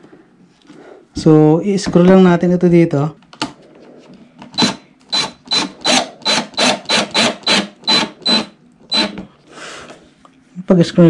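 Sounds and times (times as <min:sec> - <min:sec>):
cordless drill short pulses: 0:04.6 - 0:09.1.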